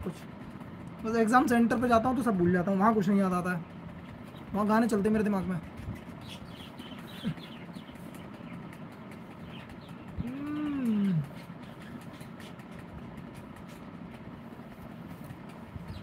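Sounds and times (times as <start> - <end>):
person humming: 10.2 - 11.4.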